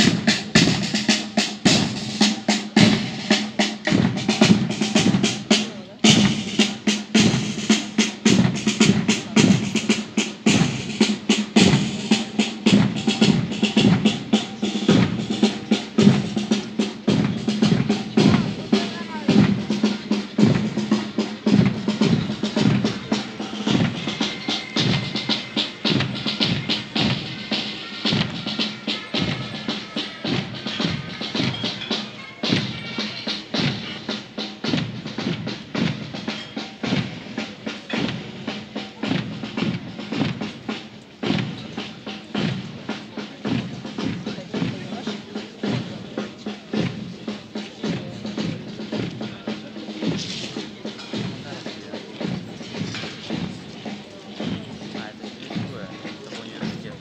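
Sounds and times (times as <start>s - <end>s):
bass and snare drumbeat: 0.0s - 57.0s
military band playing march: 0.0s - 57.0s.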